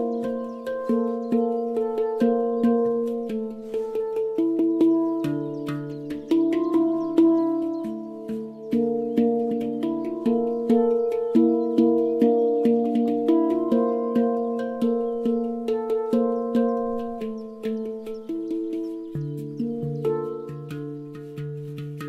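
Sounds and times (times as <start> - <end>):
handpan melody: 0.0 - 22.0.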